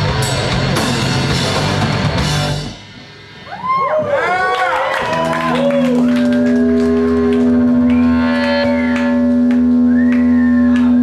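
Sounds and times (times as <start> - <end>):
punk rock band holding a note: 0.0 - 4.0, 5.0 - 11.0
deep bass note: 5.4 - 11.0.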